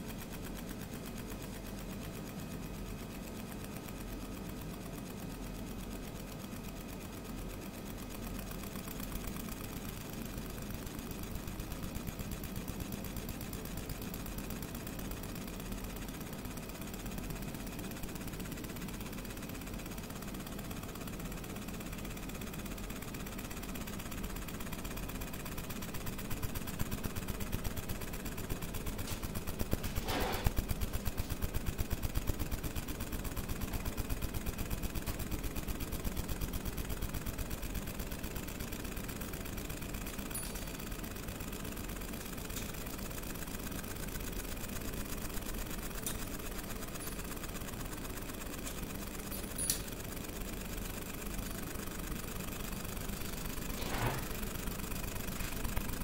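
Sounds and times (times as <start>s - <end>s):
laser head fast buzzing: 25.2s - 36.6s.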